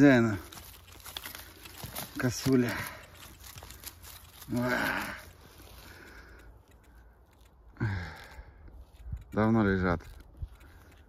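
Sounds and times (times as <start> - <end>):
rustling of dry leaf litter: 0.0 - 11.0.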